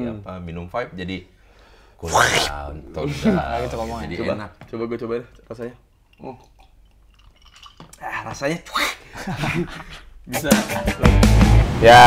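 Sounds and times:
swallowing sounds: 2.0s - 2.6s
man sipping a drink: 2.1s - 2.6s.

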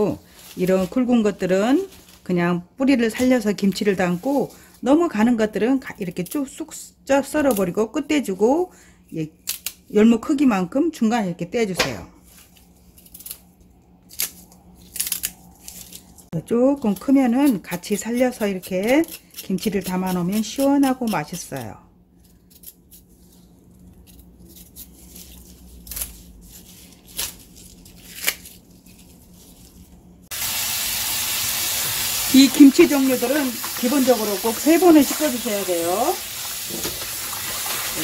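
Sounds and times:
knife snipping radish stems: 16.8s - 23.1s, 23.9s - 26.3s, 28.1s - 28.5s.

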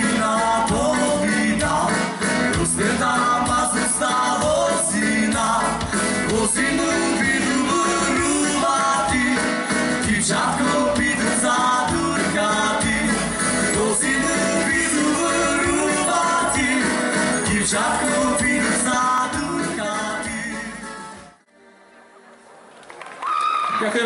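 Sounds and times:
live dance band playing a waltz: 0.0s - 21.4s.

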